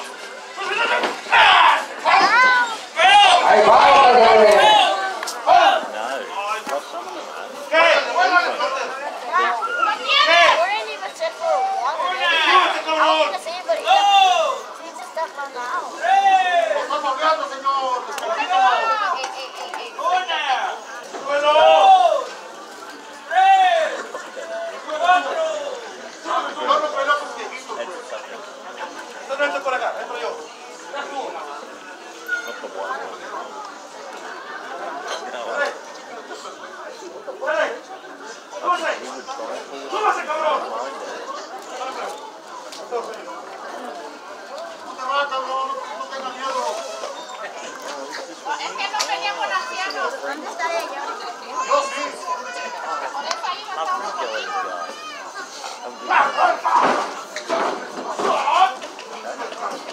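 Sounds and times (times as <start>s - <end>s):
spectators chattering and calling out: 0.0s - 59.9s
children shouting: 0.6s - 5.9s, 9.4s - 14.6s, 50.7s - 55.4s.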